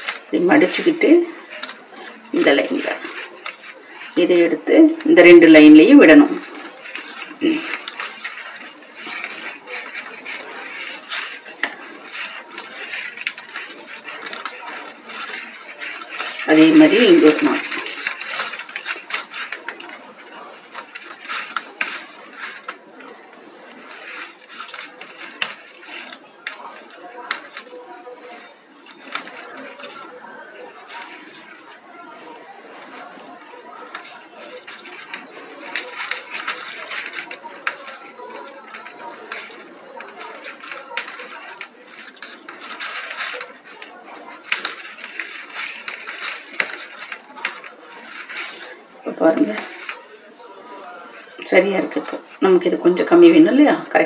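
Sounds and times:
paper rustling and cutting: 0.0s - 52.4s
faint speech: 0.0s - 54.0s.

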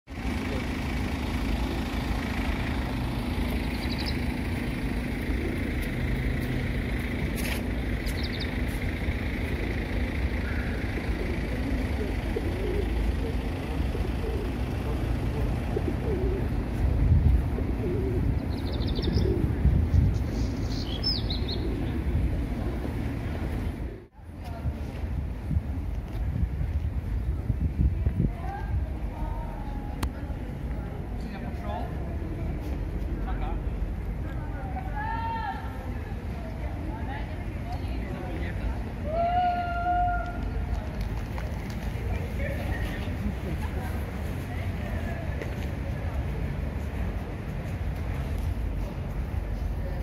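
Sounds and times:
traffic rumble: 0.1s - 50.0s
small birds chirping: 3.5s - 4.4s, 7.8s - 13.4s, 17.9s - 22.1s.

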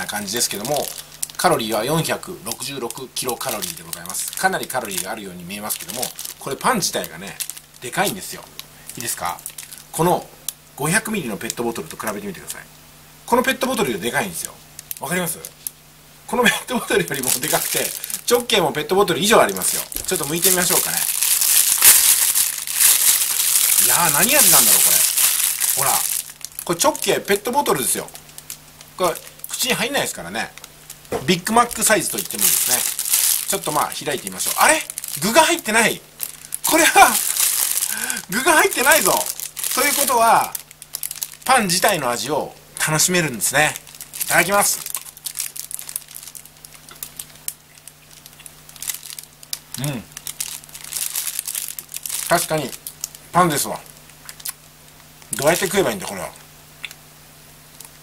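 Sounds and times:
plastic bag crinkling: 0.0s - 10.0s, 13.7s - 15.8s, 16.8s - 56.3s.

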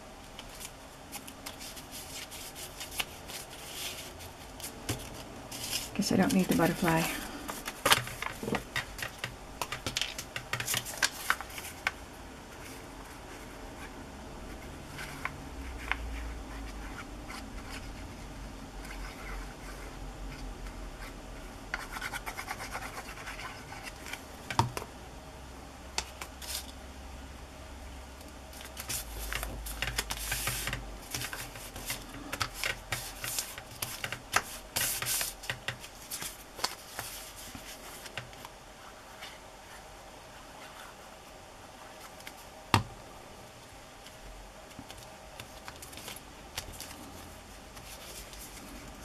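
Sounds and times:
paper rustling: 0.4s - 12.0s, 28.5s - 38.4s.

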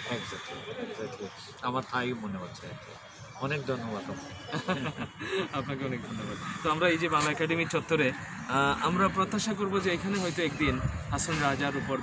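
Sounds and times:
man laughing: 4.5s - 5.6s.

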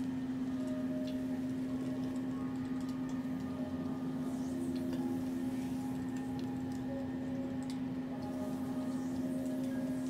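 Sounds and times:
low meditation music drone: 0.0s - 10.0s.

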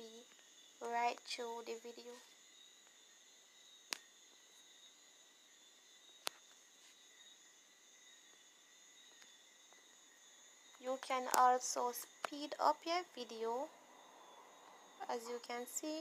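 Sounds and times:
faint high-pitched hum: 0.0s - 16.0s.

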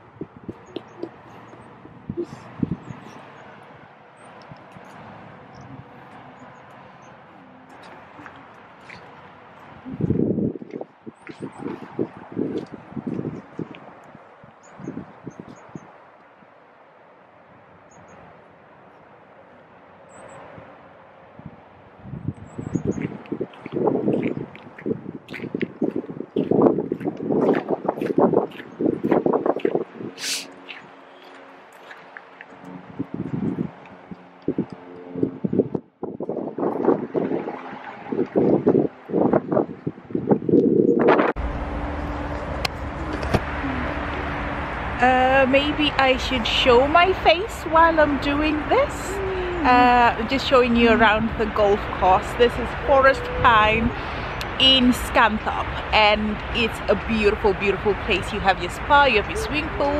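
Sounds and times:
footsteps on gravel: 7.6s - 14.0s, 22.9s - 34.3s.

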